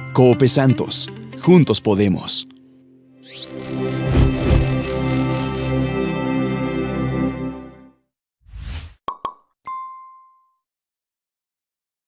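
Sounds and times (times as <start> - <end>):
bright ding: 9.7 - 10.6.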